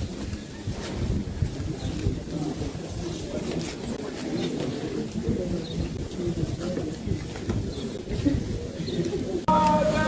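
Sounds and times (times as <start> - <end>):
crowd murmuring and talking: 0.0 - 10.0.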